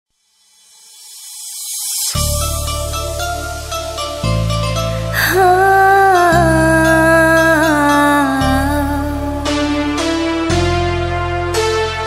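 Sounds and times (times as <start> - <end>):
electronic white-noise riser: 0.1 - 4.6.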